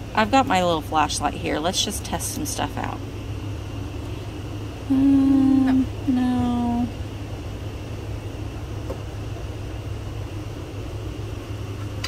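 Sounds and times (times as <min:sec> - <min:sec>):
low room hum: 0:00.0 - 0:12.0
woman humming: 0:04.8 - 0:07.0.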